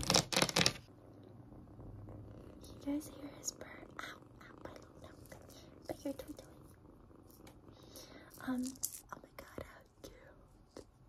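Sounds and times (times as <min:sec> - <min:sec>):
kitten purring: 0:00.0 - 0:11.0.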